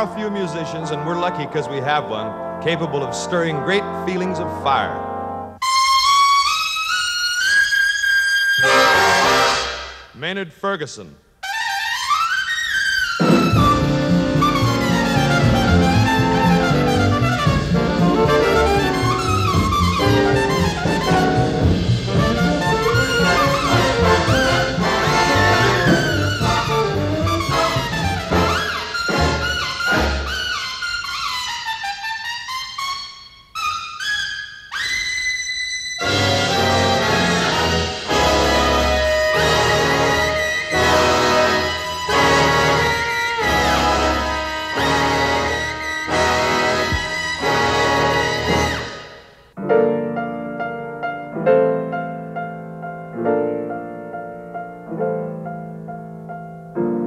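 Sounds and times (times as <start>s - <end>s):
trumpet high notes: 0.0s - 49.6s
horns playing chord: 8.6s - 10.2s, 13.2s - 30.5s, 36.0s - 49.4s.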